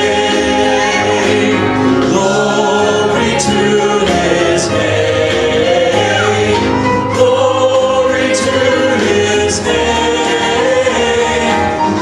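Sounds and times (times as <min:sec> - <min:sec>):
group singing a hymn: 0:00.0 - 0:12.0
keyboard accompaniment: 0:00.0 - 0:12.0.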